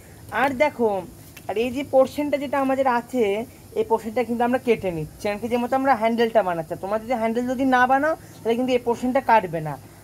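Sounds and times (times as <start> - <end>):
woman talking: 0.3 - 9.9.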